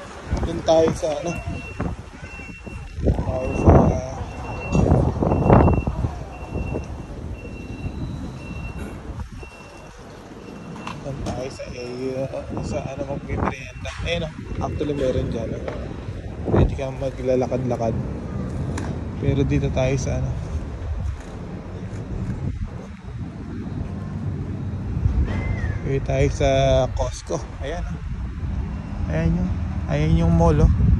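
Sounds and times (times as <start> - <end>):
wind buffeting microphone: 0.0 - 30.9
high-pitched warning beeps: 1.2 - 15.6.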